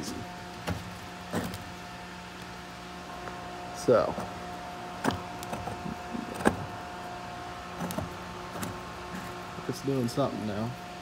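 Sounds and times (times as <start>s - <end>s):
steady hum with tones: 0.0s - 11.0s.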